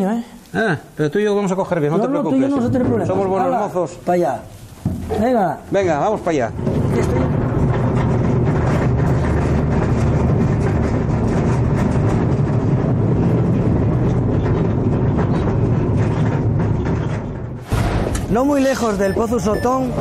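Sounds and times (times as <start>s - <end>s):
rattle of wheels on rails: 4.8s - 20.0s
locomotive low rumble: 6.0s - 20.0s.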